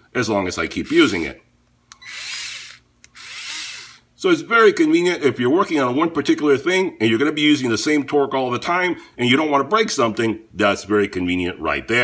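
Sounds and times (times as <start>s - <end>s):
cordless screwdriver motor whine: 1.9s - 4.0s.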